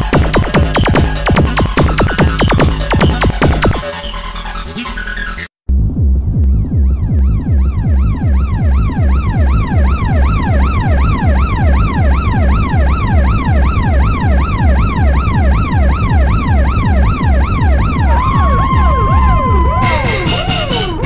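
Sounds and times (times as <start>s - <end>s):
steady kick drum: 0.0s - 3.8s, 5.7s - 12.7s, 17.1s - 21.0s
siren-like synth sweeping: 6.8s - 21.0s.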